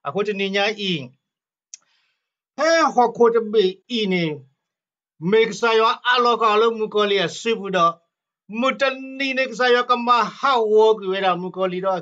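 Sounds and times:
man speaking: 0.0 - 1.2, 2.6 - 4.6, 5.2 - 12.0.

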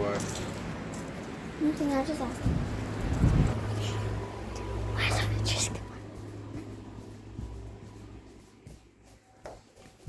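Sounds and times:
steady low hum: 0.0 - 10.0
person whispering: 4.8 - 6.2.

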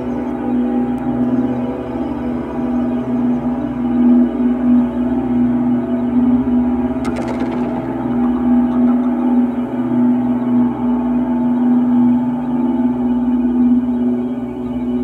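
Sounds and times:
low ambient drone: 0.0 - 15.0.

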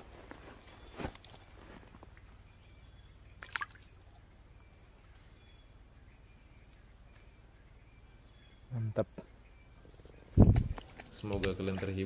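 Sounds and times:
fish splashing in water: 3.4 - 4.0.

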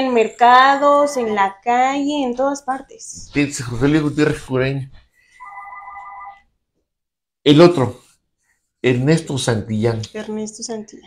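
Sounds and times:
high electronic tone: 5.4 - 6.4.

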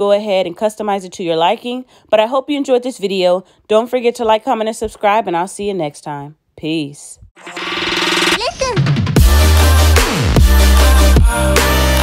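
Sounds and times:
electronic music synth build-up: 7.4 - 11.2.

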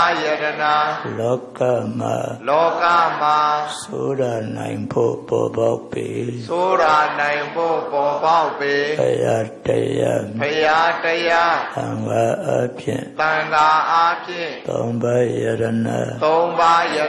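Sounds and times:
man chanting into microphone: 0.0 - 17.0.

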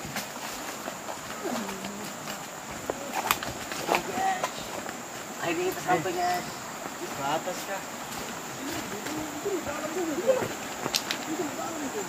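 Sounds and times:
shallow river hiss: 0.0 - 12.0
men's voices talking and calling: 1.4 - 12.0.

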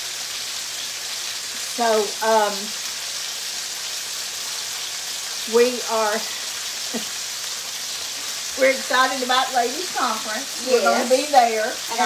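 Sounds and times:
pork chops sizzling in oil: 0.0 - 12.0.

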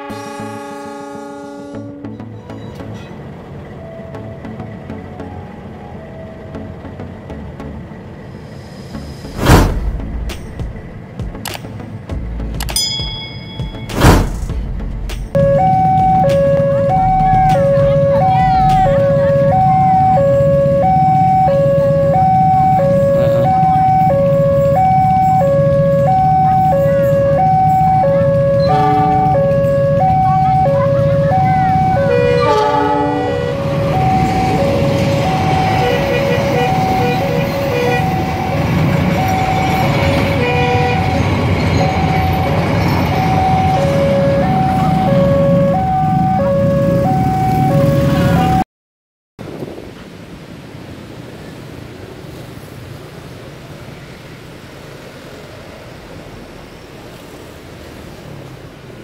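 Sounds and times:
freight train rumble: 0.0 - 48.6, 49.4 - 59.0
level crossing alarm tones: 15.3 - 48.6
train wheels on rails: 24.5 - 45.4.

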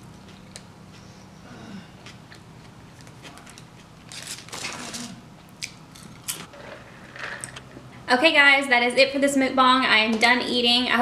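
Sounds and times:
chewing with wet mouth sounds: 0.1 - 1.2.

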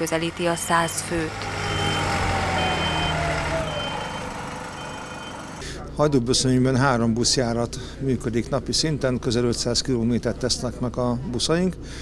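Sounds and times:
bus diesel engine running: 0.0 - 5.8
falling whine: 0.4 - 5.6
reversing alarm beeps: 0.4 - 5.6.

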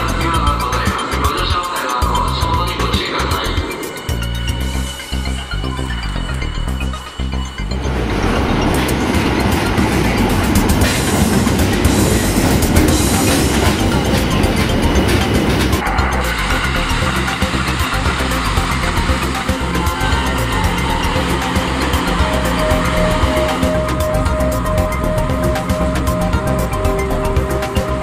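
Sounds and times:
background music: 0.0 - 28.0
electric train rushing past: 0.0 - 28.0
subway train arriving: 0.0 - 28.0.

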